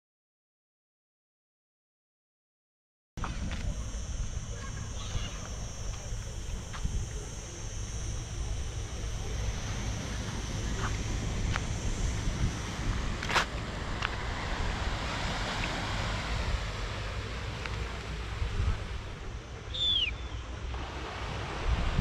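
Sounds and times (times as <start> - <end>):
wind buffeting microphone: 3.2 - 19.4, 21.4 - 22.0
distant surf: 3.2 - 22.0.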